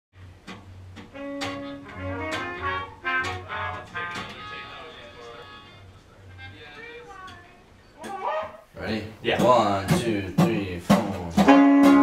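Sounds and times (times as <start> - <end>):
acoustic guitar strums: 0.3 - 4.9, 9.4 - 12.0
trumpet and trombone held notes: 1.1 - 5.9, 11.4 - 12.0.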